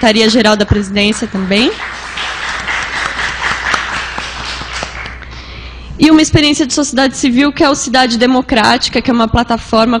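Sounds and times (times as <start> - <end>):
audience applauding: 1.0 - 5.2.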